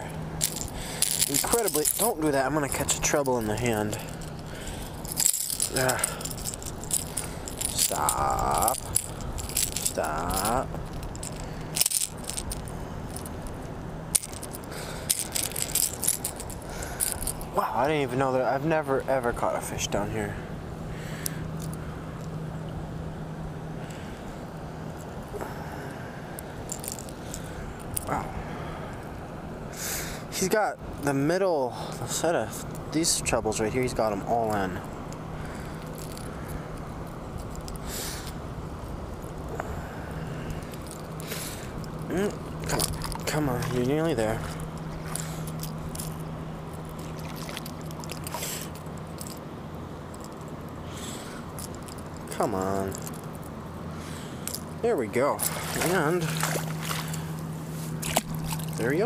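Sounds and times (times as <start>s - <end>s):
steady background rush: 0.0s - 18.1s
metal fishing lure hooks rattling: 0.0s - 19.3s, 21.3s - 22.4s, 26.6s - 28.2s, 31.9s - 38.4s, 40.5s - 53.6s, 54.4s - 59.0s
rustle of handling: 0.0s - 22.7s, 26.3s - 28.2s, 30.2s - 59.0s.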